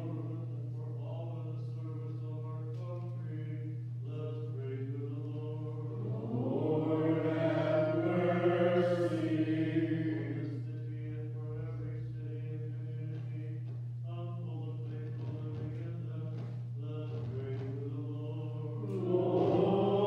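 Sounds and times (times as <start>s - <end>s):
steady low hum: 0.0s - 20.0s
voices chanting: 5.8s - 10.6s, 18.8s - 20.0s.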